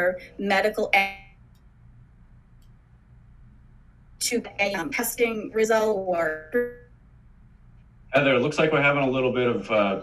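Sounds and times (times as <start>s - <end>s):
woman speaking: 0.0s - 1.3s, 4.2s - 6.9s
faint line hiss and hum: 0.0s - 10.0s.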